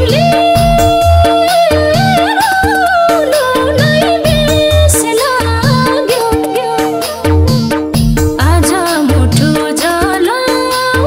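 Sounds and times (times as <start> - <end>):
folk band bass and drums: 0.0 - 1.3, 7.3 - 8.6
woman singing ornamented notes: 0.0 - 7.4, 8.4 - 11.0.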